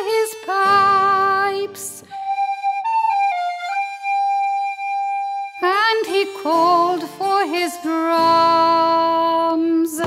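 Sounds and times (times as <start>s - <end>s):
song with accompaniment: 0.0s - 10.0s
solo flute-like woodwind: 2.0s - 6.0s.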